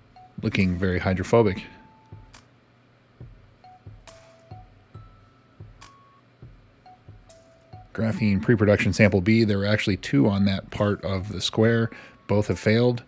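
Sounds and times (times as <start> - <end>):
soft chime-like music with beat: 0.0 - 2.5, 3.2 - 12.9.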